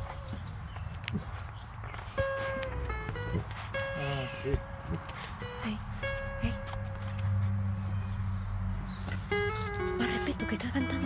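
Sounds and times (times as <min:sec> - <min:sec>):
finger-picked acoustic guitar: 0:01.9 - 0:11.0.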